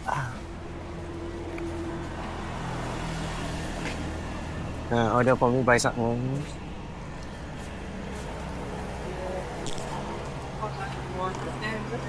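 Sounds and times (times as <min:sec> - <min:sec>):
street noise: 0:00.0 - 0:12.0
vehicle engine humming: 0:00.0 - 0:12.0.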